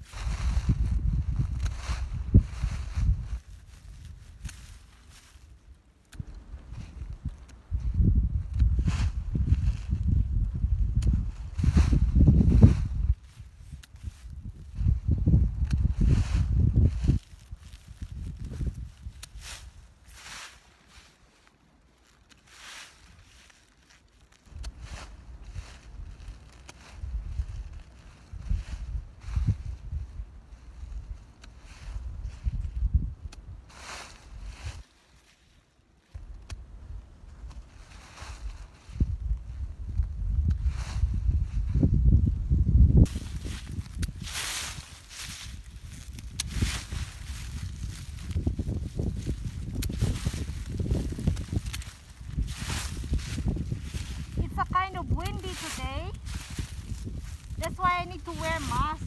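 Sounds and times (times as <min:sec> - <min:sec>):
wind rumbling on microphone: 0:00.0 - 0:20.5, 0:24.4 - 0:34.8, 0:36.1 - 0:59.0
dry leaves rustling: 0:00.0 - 0:33.1, 0:33.7 - 0:59.0
hand shears snipping: 0:19.1 - 0:19.7, 0:46.1 - 0:47.2, 0:49.3 - 0:50.2, 0:51.3 - 0:52.1.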